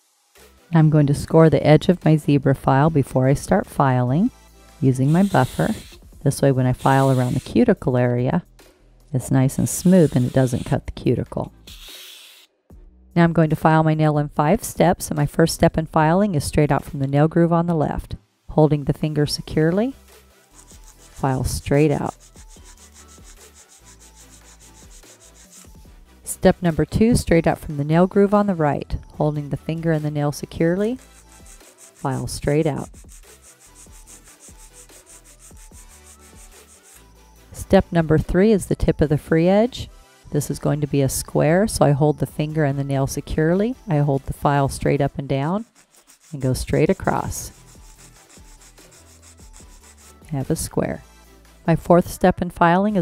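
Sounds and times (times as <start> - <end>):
nail file rasping on acrylic nail: 5.0 - 6.0, 6.7 - 7.6, 9.7 - 10.8, 11.6 - 12.4, 19.6 - 25.8, 29.8 - 38.0, 44.2 - 50.6.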